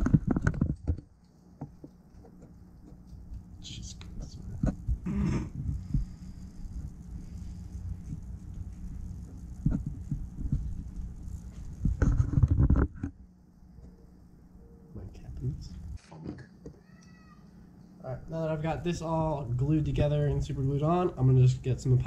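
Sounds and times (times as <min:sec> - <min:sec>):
low rumble: 0:04.3 - 0:12.0.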